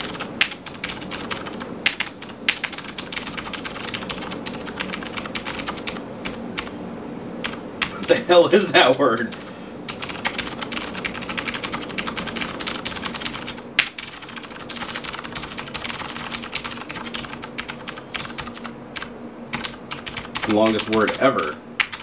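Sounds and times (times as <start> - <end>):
typing on mechanical keyboard: 0.0 - 6.7, 9.2 - 22.0.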